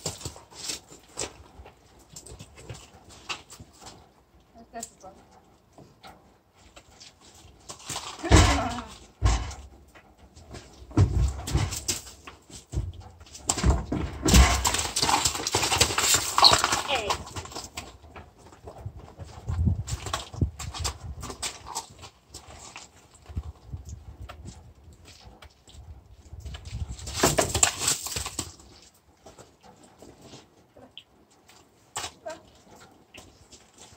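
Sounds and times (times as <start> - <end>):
hooves clattering on a ramp: 0.0 - 33.9.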